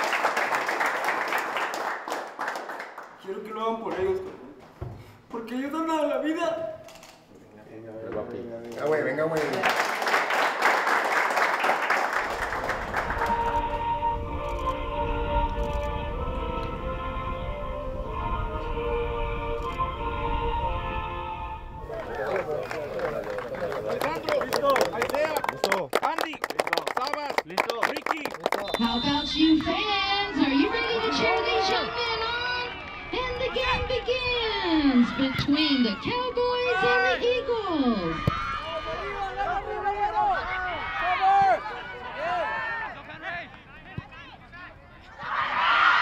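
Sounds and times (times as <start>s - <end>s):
hand claps: 0.0s - 3.2s, 22.3s - 29.0s
background music with held notes: 13.3s - 21.9s.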